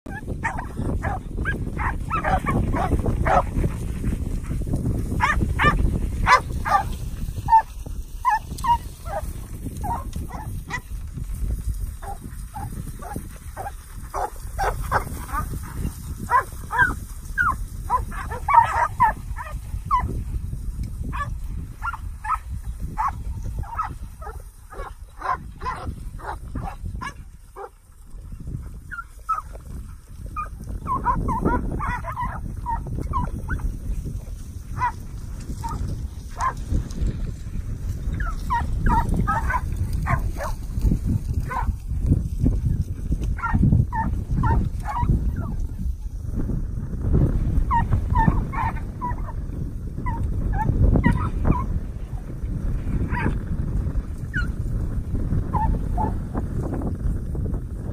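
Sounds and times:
dogs barking: 0:00.1 - 0:03.8, 0:04.4 - 0:10.8, 0:12.0 - 0:20.1, 0:21.1 - 0:27.7, 0:28.9 - 0:29.5, 0:30.4 - 0:33.6, 0:34.8 - 0:35.0, 0:38.2 - 0:40.6, 0:41.4 - 0:41.7, 0:43.4 - 0:45.6, 0:47.7 - 0:49.4, 0:50.0 - 0:51.7, 0:53.1 - 0:53.4, 0:55.5 - 0:56.2.

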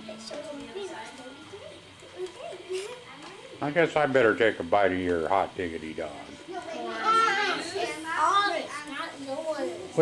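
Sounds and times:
young children talking: 0:00.0 - 0:03.8, 0:06.3 - 0:10.0.

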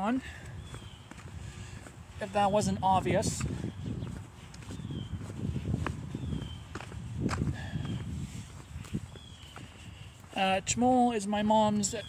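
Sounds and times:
footsteps outdoors: 0:00.0 - 0:12.0
microphone handling rumble: 0:02.6 - 0:09.3.

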